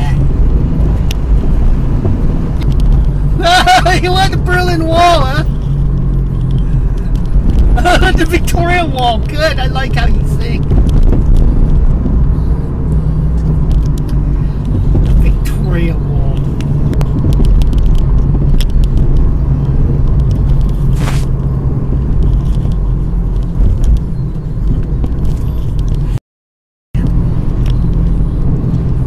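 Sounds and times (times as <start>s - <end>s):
car engine and road noise: 0.0s - 26.2s, 27.0s - 29.0s
brief hiss: 20.9s - 21.3s.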